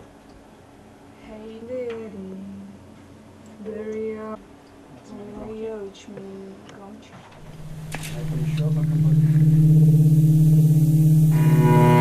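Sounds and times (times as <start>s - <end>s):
cello bowed low note: 7.4s - 12.0s.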